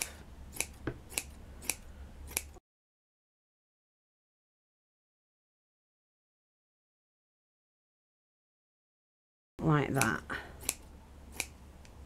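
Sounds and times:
scissors snipping wadding: 0:00.0 - 0:02.6, 0:09.9 - 0:12.0.

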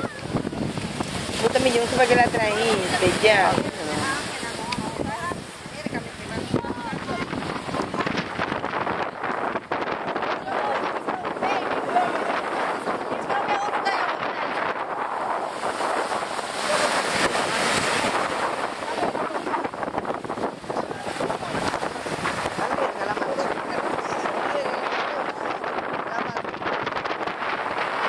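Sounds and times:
scattered voices: 0:00.0 - 0:27.2
surf breaking: 0:00.0 - 0:28.0
wind buffeting microphone: 0:00.0 - 0:28.0.

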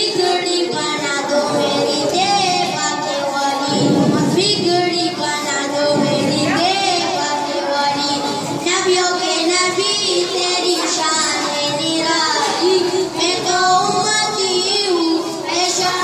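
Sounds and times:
boys singing into microphone: 0:00.0 - 0:16.0.

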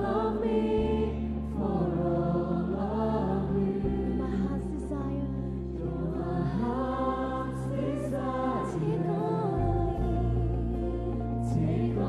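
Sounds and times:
choir singing worship song: 0:00.0 - 0:12.0
sustained low accompaniment notes: 0:00.0 - 0:12.0.

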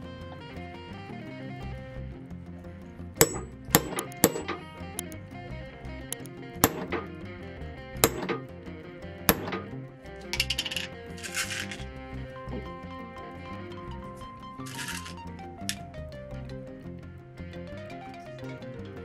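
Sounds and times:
background music: 0:00.0 - 0:19.0
hole punch striking leather: 0:03.2 - 0:05.2, 0:06.1 - 0:07.1, 0:08.0 - 0:08.4, 0:09.3 - 0:09.7.

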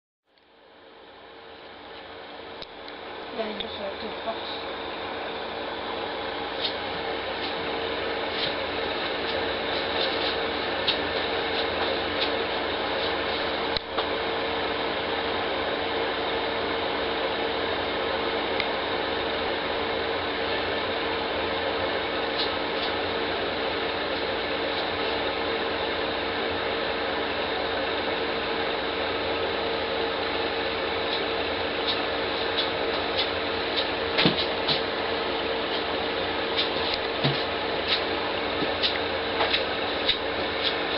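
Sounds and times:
aquarium filter humming: 0:00.3 - 0:40.9.

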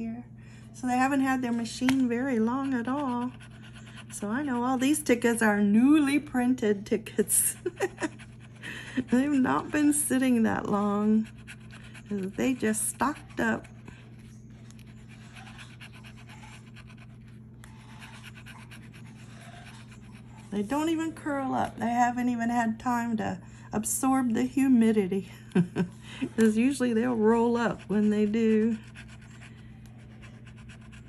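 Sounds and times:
steady low hum: 0:00.0 - 0:31.0
scratching lottery ticket: 0:01.3 - 0:05.4, 0:07.2 - 0:21.2, 0:26.4 - 0:31.0.

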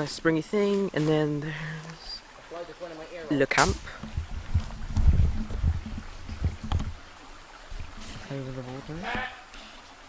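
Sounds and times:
wind on microphone: 0:03.6 - 0:08.2.

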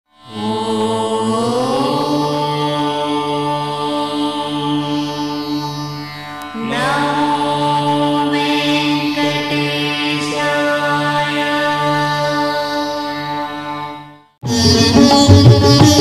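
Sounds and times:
chant-like vocal: 0:00.2 - 0:15.2.

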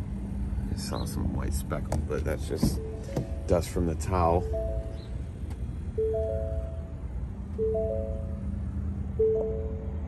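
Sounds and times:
low steady rumble: 0:00.0 - 0:10.0
two-note warning chime: 0:04.2 - 0:05.0, 0:06.0 - 0:06.9, 0:07.6 - 0:08.4.

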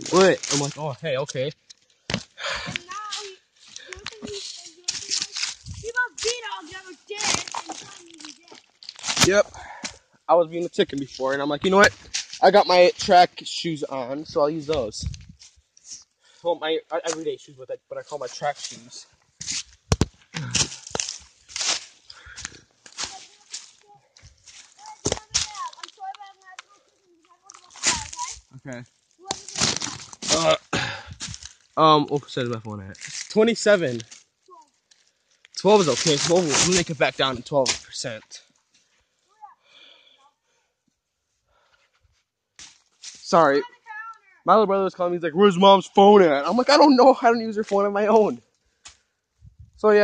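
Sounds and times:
rustling and crunching of leaves: 0:00.0 - 0:01.0, 0:02.7 - 0:09.4, 0:18.1 - 0:31.9, 0:33.0 - 0:38.1.

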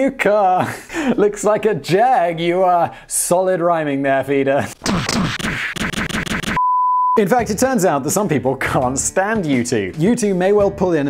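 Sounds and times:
crackling distorted noise burst: 0:04.8 - 0:06.6
steady test-tone beep: 0:06.5 - 0:07.2.

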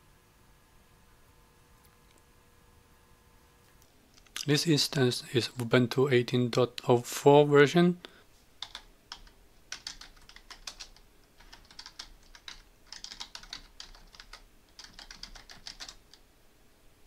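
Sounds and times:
computer keyboard typing: 0:08.6 - 0:16.2.

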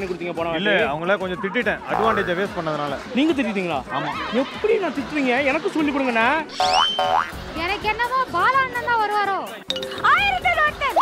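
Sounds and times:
background music: 0:00.0 - 0:11.0
cartoon boing: 0:06.5 - 0:07.4.

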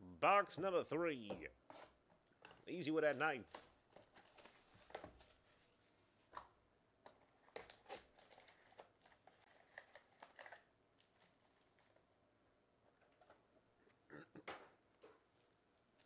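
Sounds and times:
plastic wrap crinkling and tearing: 0:03.4 - 0:05.9, 0:07.2 - 0:12.0
foil packs rustling and clicking: 0:03.5 - 0:05.8, 0:07.5 - 0:12.0.

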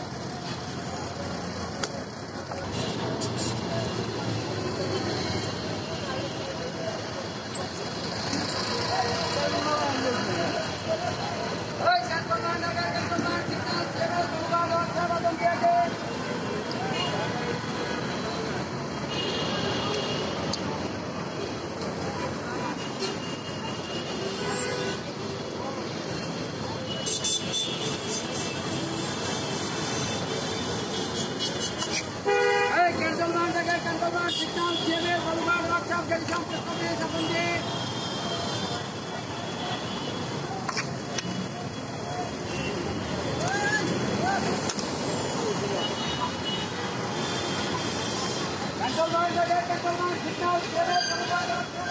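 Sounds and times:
traffic and engines: 0:00.0 - 0:51.9
people talking: 0:05.6 - 0:18.7, 0:32.8 - 0:37.7
vehicle horn honking: 0:31.4 - 0:32.8.

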